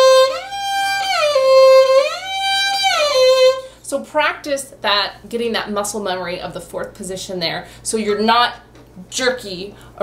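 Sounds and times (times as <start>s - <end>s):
solo violin sliding notes: 0.0s - 3.7s.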